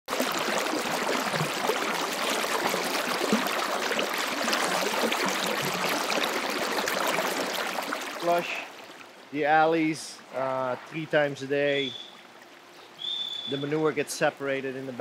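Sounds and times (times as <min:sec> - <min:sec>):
water rushing along barn floor: 0:00.1 - 0:09.0.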